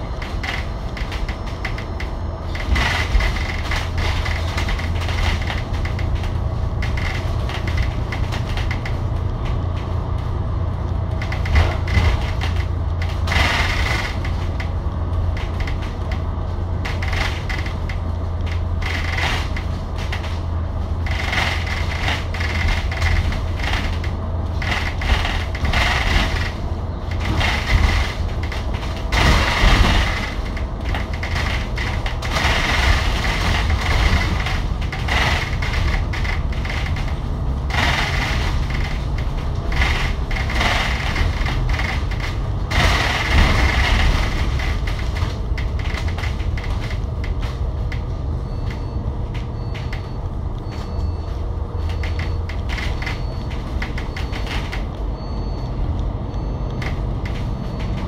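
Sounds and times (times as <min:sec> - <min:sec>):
diesel bus engine droning: 0:00.0 - 0:58.0
road and tyre noise: 0:00.0 - 0:58.0.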